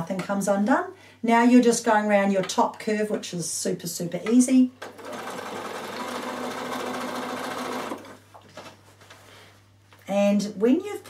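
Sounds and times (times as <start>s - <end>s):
sewing machine stitching: 4.8s - 8.2s.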